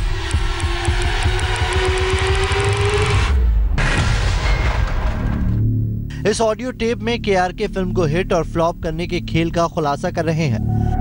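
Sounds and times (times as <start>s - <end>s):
accelerating ticks: 0.0s - 3.3s.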